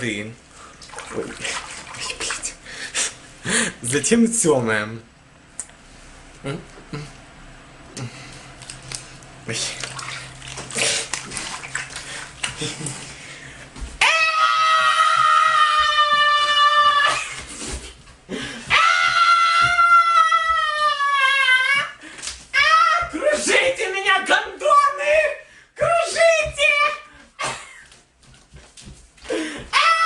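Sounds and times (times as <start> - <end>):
water sloshing: 0.8 - 2.6, 8.6 - 13.0
man crying out high-pitched: 18.7 - 22.0, 29.7 - 30.0
man yelping: 22.6 - 27.1.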